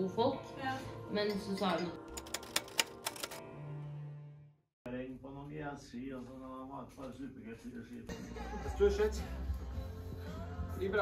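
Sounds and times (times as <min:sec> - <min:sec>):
background music: 0:00.0 - 0:05.3, 0:08.0 - 0:11.0
typewriter key clicks: 0:02.1 - 0:03.4.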